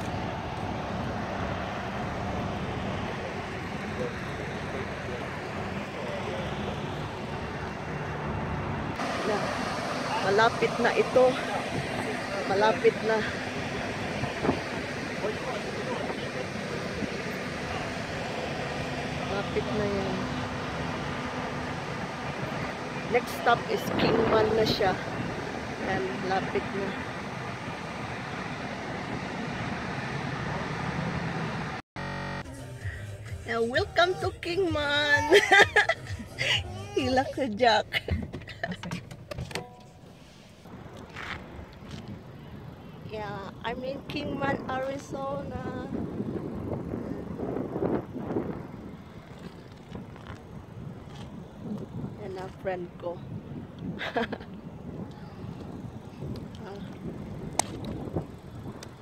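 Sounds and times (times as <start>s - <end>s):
wind on microphone: 9.0s - 18.0s, 21.1s - 30.0s, 40.7s - 59.0s.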